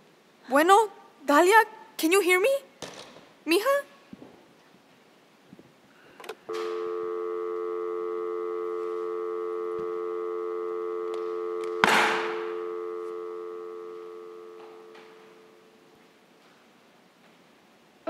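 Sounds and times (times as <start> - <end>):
telephone dial tone: 6.5 - 15.6.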